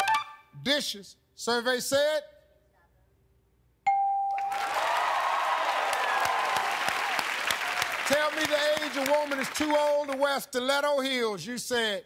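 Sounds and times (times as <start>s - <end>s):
audience clapping: 4.4s - 10.4s
audience cheering and shouting: 4.5s - 9.4s.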